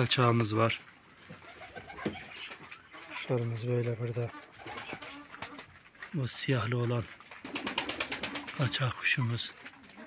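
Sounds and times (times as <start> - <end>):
pigeons cooing: 1.3 - 3.6.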